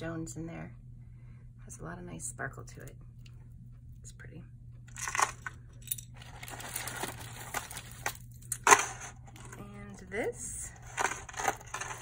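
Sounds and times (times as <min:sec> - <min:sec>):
plastic bag crinkling: 0:04.9 - 0:09.6, 0:10.7 - 0:12.0.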